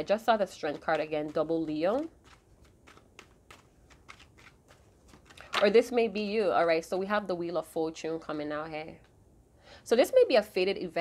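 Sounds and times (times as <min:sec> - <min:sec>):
cards being shuffled: 0:00.6 - 0:05.8.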